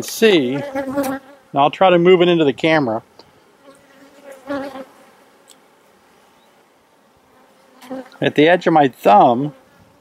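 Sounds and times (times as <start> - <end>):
bees buzzing: 0.3 - 2.2, 3.0 - 10.0.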